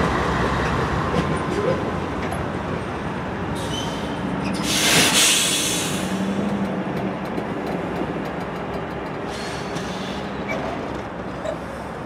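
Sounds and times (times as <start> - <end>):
diesel locomotive engine: 0.0 - 12.0
loud hiss: 3.6 - 6.3.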